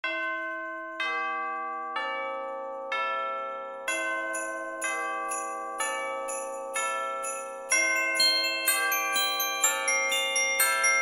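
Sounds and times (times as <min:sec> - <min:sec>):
small bells jingling: 0:00.1 - 0:11.0.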